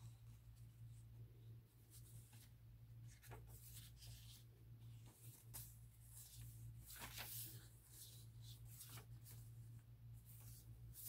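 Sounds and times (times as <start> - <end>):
paper pages rustling: 1.9 - 11.0.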